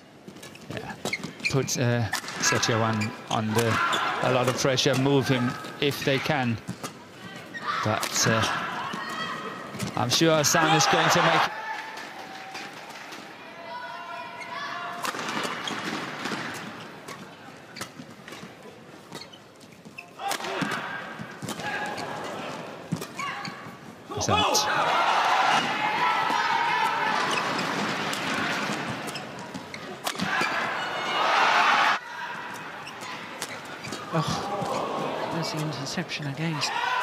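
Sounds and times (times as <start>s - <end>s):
spectators' voices: 0.8s - 18.9s, 20.1s - 37.0s
racket hitting shuttlecock: 26.3s - 30.6s.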